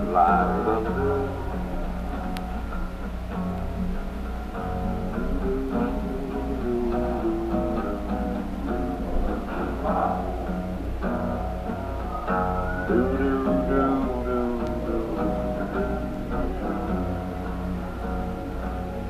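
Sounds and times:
guitar picking single notes: 0.0 - 19.0.

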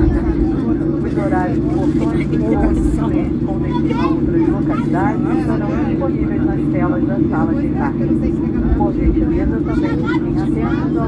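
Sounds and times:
aircraft cabin engine drone: 0.0 - 11.0
voices talking: 0.0 - 11.0.

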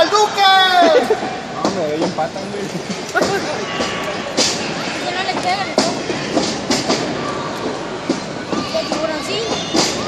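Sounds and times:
arena crowd voices: 0.0 - 10.0.

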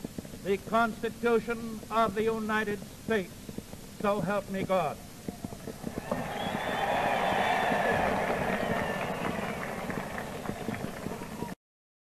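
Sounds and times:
recording crackle: 0.0 - 6.7
crowd applauding and cheering: 5.8 - 11.6.

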